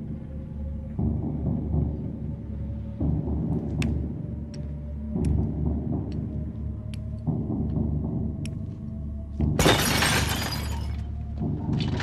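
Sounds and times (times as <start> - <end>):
loud shattering crash: 9.6 - 11.0.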